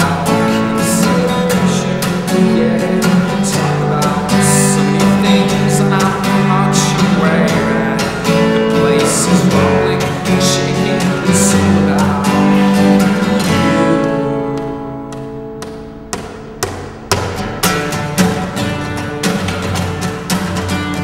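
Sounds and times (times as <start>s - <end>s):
acoustic guitar strumming: 0.0s - 21.0s.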